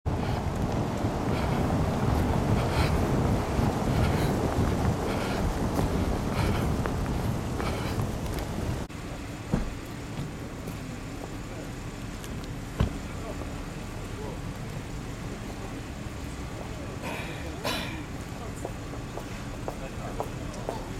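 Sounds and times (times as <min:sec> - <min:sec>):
wind buffeting microphone: 0:00.0 - 0:11.4
street traffic: 0:00.0 - 0:20.9
sharp thuds: 0:09.5 - 0:10.4.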